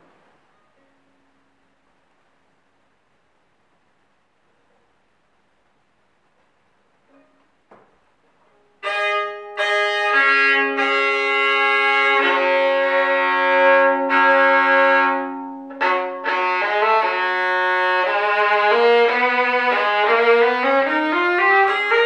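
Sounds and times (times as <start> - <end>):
solo violin bowed: 8.8 - 22.0.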